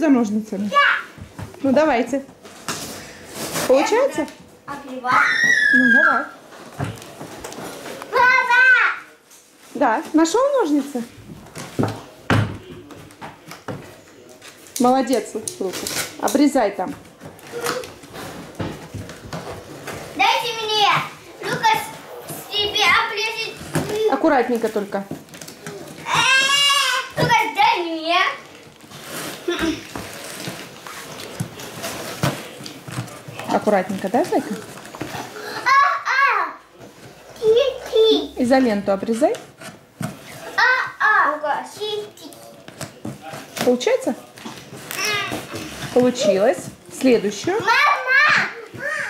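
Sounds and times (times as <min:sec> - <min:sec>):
child squealing: 0:05.1 - 0:06.3.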